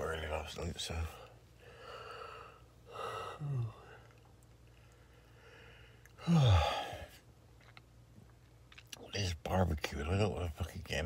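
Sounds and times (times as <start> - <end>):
man breathing: 1.1 - 7.2
man sighing: 2.9 - 4.0, 6.2 - 7.1.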